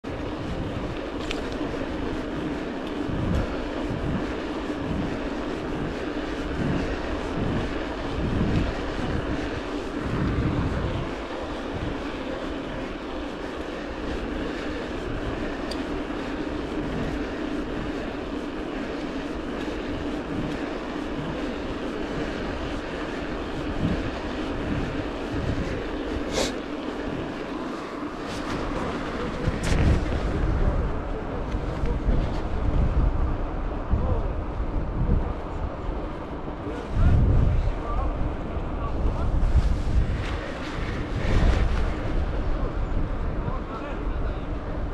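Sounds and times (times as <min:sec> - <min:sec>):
bike tyre hum on asphalt: 0:00.0 - 0:44.9
wind buffeting microphone: 0:00.0 - 0:44.9.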